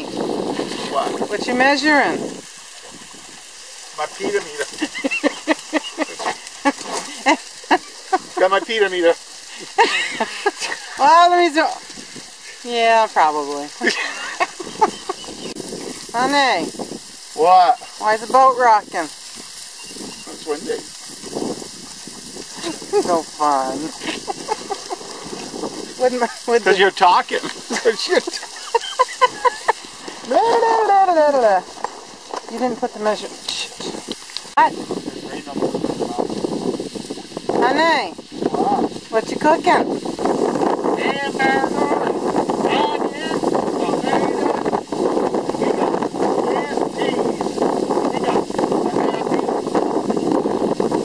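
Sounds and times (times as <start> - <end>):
choppy water around a boat: 0.0 - 51.0
gusty wind: 0.0 - 51.0
person speaking: 30.2 - 31.6.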